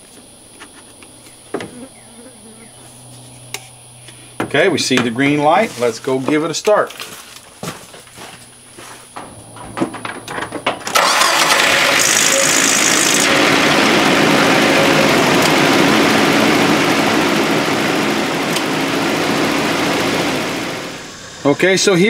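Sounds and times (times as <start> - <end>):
pickup truck engine running: 8.0 - 22.0.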